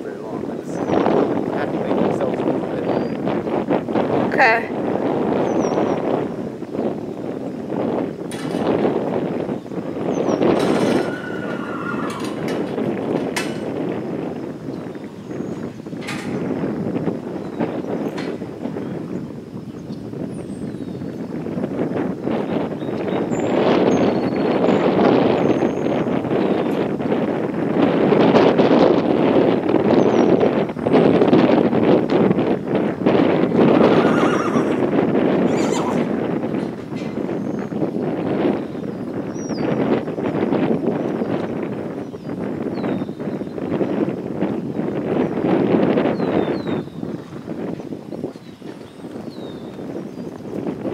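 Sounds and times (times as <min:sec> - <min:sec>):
wind on microphone: 0:00.0 - 0:50.9
horse whinnying: 0:10.5 - 0:12.8, 0:33.6 - 0:36.3.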